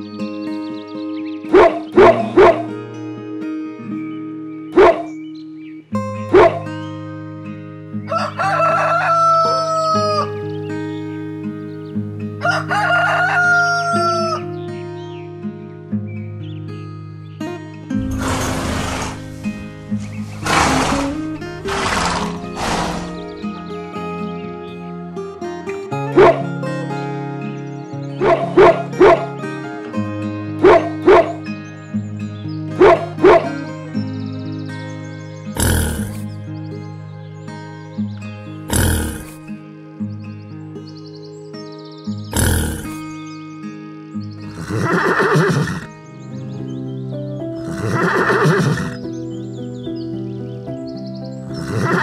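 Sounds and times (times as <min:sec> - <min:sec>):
gentle background music: 0:00.0 - 0:52.0
animal calls: 0:01.5 - 0:02.7, 0:04.8 - 0:05.1, 0:18.0 - 0:23.6, 0:30.6 - 0:31.4, 0:32.8 - 0:33.6, 0:35.6 - 0:36.3, 0:38.7 - 0:39.4, 0:42.3 - 0:43.1, 0:44.5 - 0:45.9, 0:47.6 - 0:49.1, 0:51.5 - 0:52.0.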